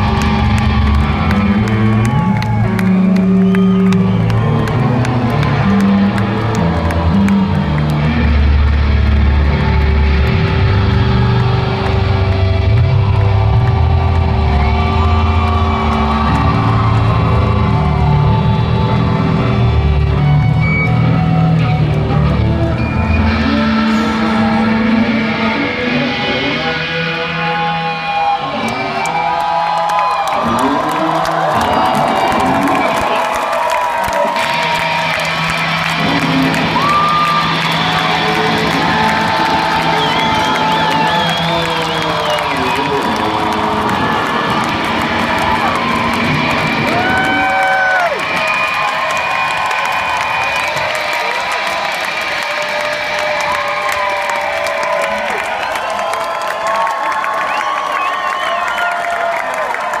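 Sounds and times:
live rock music: 0:00.0 - 0:29.6, 0:30.4 - 0:49.2
crowd cheering and whooping: 0:00.0 - 1:00.0.

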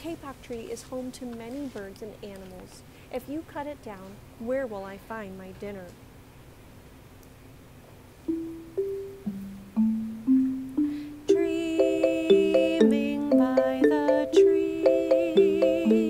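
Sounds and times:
wooden xylophones played with mallets: 0:08.3 - 0:16.0.

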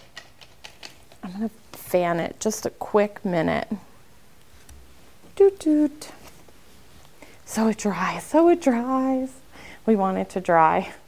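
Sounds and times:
woman speaking: 0:01.2 - 0:03.9, 0:05.4 - 0:06.2, 0:07.5 - 0:11.0.

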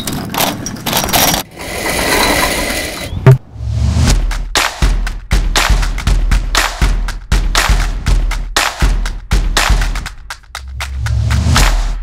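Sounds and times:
chain rattling: 0:00.0 - 0:01.5
gate rolling on metal wheels: 0:00.0 - 0:03.2.

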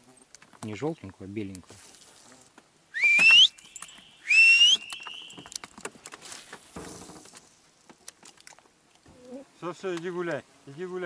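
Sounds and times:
bird whistled calls: 0:02.9 - 0:05.6.

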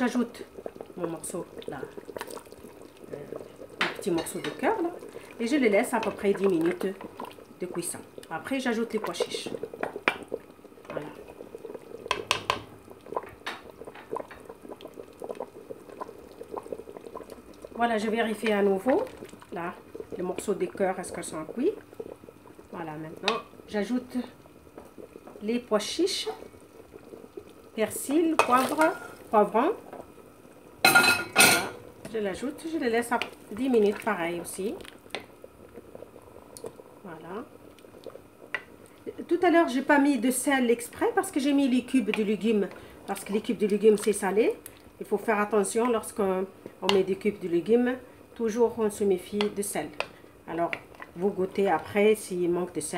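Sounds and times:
stew bubbling in a pot: 0:00.0 - 0:52.9.

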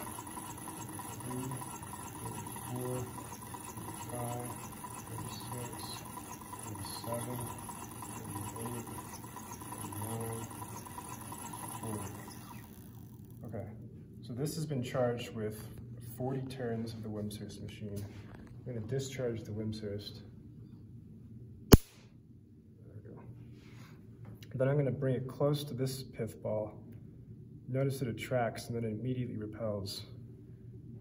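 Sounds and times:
hand-cranked machine whirring: 0:00.0 - 0:13.4.

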